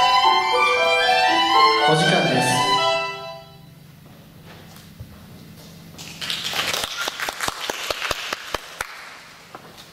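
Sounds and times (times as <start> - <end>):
small crowd clapping: 6.0 - 9.5.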